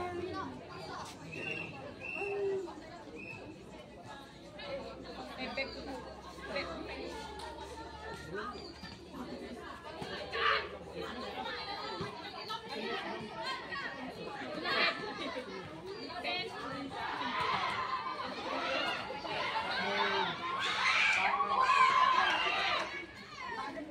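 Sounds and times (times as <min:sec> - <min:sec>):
people chattering and calling out: 0:00.0 - 0:23.9.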